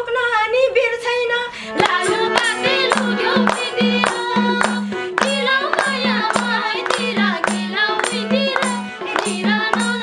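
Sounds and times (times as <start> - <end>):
harmonium: 0.0 - 10.0
folk singing: 1.7 - 10.0
hand drum beat: 1.8 - 10.0
handclaps: 1.8 - 10.0.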